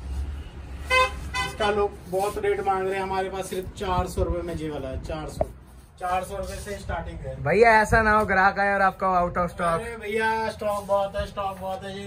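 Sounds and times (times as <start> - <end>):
traffic rumble: 0.0 - 12.0
vehicle horn toot: 0.8 - 1.8.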